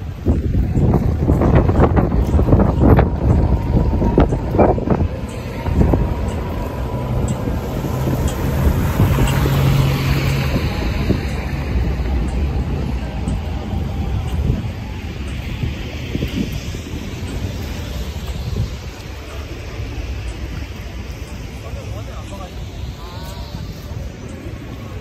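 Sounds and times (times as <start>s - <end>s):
street traffic rumble: 0.0s - 25.0s
tram passing: 0.0s - 25.0s
wind buffeting microphone: 0.0s - 25.0s.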